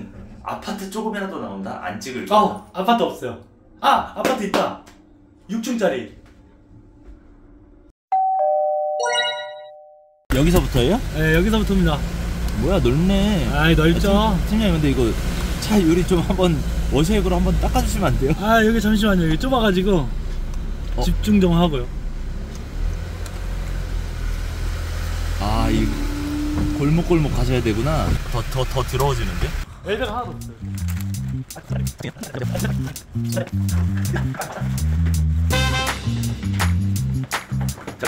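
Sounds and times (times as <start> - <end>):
ding-dong chime: 8.1 - 10.2
truck engine humming: 10.3 - 35.5.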